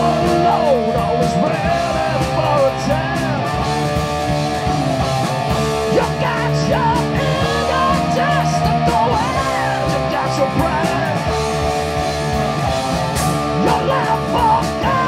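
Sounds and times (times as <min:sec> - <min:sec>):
bass and drums: 0:00.0 - 0:15.0
distorted electric guitars: 0:00.0 - 0:15.0
lead guitar line bending: 0:00.0 - 0:15.0.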